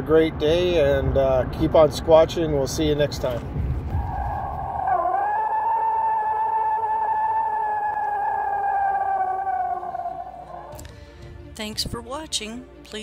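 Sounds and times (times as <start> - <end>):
eerie theremin-like wail: 3.8 - 10.8.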